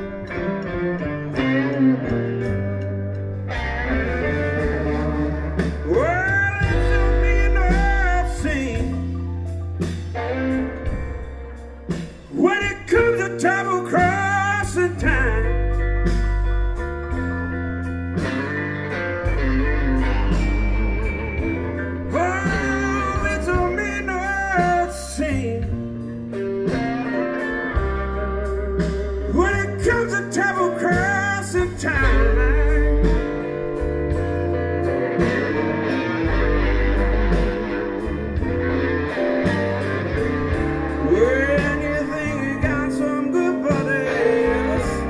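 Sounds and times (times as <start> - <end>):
electric guitar lead with bent notes: 0.0 - 45.0
live blues band playing: 0.0 - 45.0.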